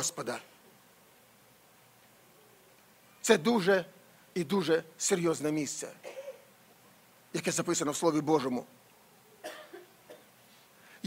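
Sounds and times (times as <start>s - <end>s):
faint short cough: 6.0s - 6.5s, 9.4s - 10.4s.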